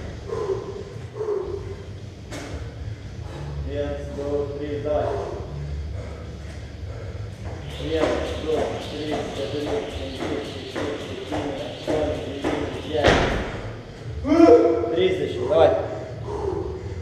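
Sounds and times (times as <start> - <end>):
jump rope ticks and thuds: 7.9 - 13.5.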